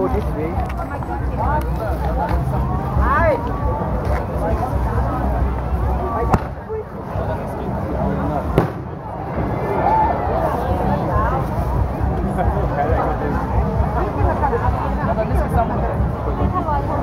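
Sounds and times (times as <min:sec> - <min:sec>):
crowd chattering: 0:00.0 - 0:17.0
fireworks bangs: 0:08.5 - 0:09.0.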